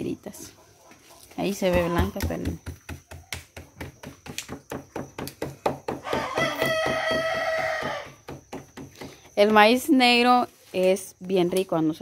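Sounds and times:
hands patting dough: 1.3s - 9.6s.

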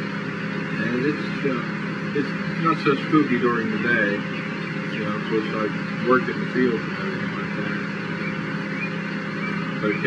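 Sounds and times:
constant low hum: 0.0s - 10.0s.

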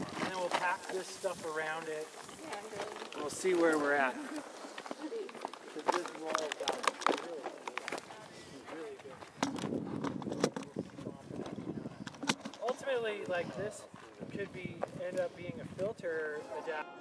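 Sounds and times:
people talking indistinctly: 0.2s - 17.0s.

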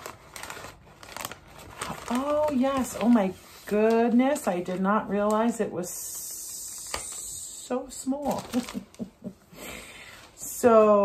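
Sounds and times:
paper mailer being torn open: 0.0s - 5.3s.

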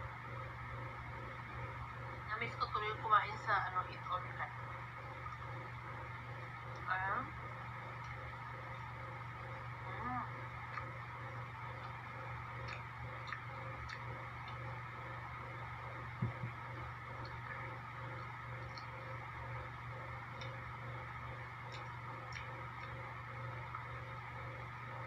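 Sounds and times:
steady low hum: 0.0s - 25.0s
mouth clicks chewing: 10.3s - 19.2s, 21.3s - 24.0s.

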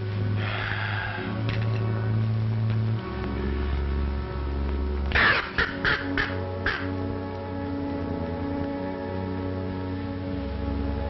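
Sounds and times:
dramatic orchestral music: 0.0s - 11.0s
harsh rasping cries: 0.4s - 1.4s.

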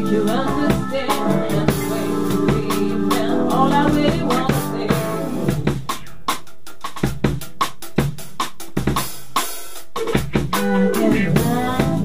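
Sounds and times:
band playing: 0.0s - 6.5s, 10.0s - 12.0s
drum kit playing: 0.0s - 12.0s.

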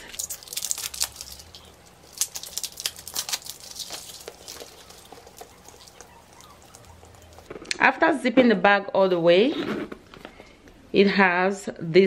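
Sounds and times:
packaging crinkling and rustling: 0.0s - 7.8s.

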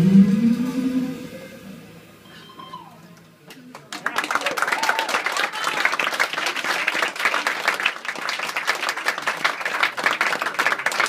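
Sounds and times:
double bass: 0.0s - 3.3s.

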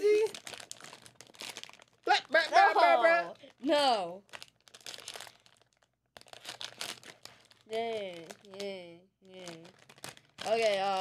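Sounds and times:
foil packet crinkling: 0.0s - 2.7s, 3.3s - 11.0s.

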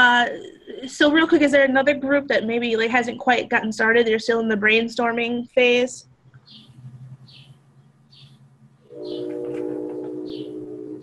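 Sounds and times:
low steady hum: 0.0s - 11.0s
steady multi-pitch tone: 8.8s - 11.0s.

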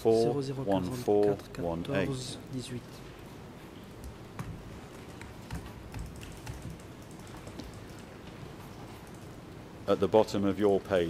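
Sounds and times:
steady low hum: 0.0s - 11.0s
light clicks and taps: 4.0s - 9.3s.

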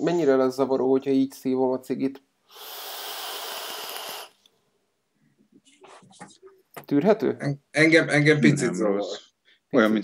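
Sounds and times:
air hissing through e-cigarette: 2.5s - 4.4s.

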